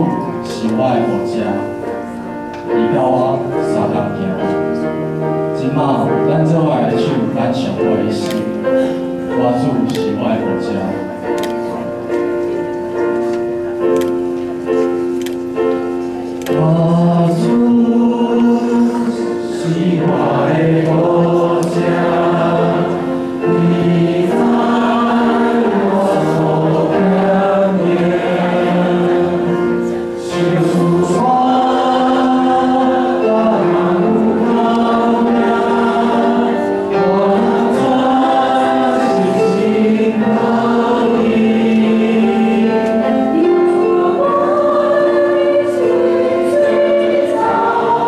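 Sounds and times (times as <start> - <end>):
group singing a hymn: 16.4 - 48.0.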